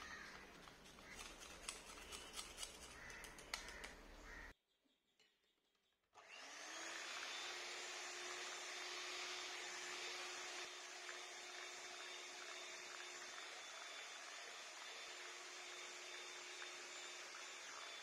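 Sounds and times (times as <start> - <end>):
electric hand mixer whisking: 6.2 - 18.0.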